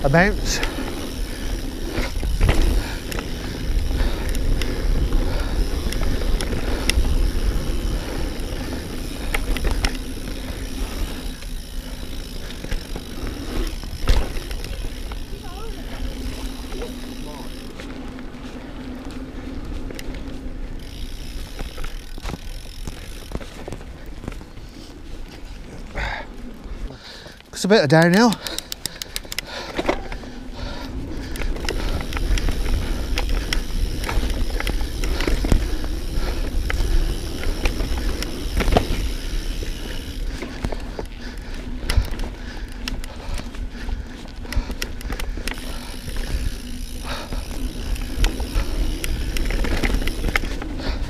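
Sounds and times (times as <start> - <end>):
bike tyres rolling on gravel: 0.0 - 51.0.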